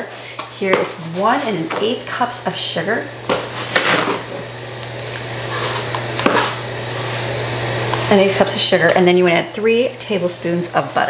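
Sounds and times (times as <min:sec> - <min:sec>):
steady low hum: 0:00.0 - 0:11.0
sugar pouring hiss: 0:05.4 - 0:06.1.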